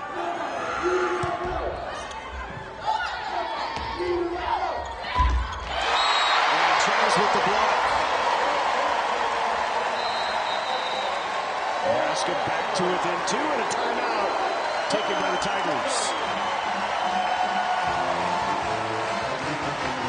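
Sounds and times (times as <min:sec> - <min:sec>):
crowd cheering and clapping: 0:05.5 - 0:20.0.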